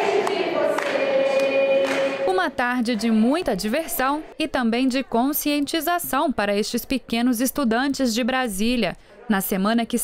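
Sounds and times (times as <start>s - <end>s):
children singing: 0.0s - 2.3s
hand claps: 0.0s - 2.3s.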